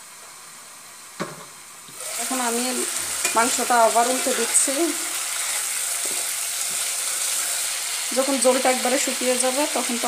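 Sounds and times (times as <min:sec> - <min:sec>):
meat sizzling in oil: 0:00.0 - 0:10.0
spatula stirring in pan: 0:02.9 - 0:08.2.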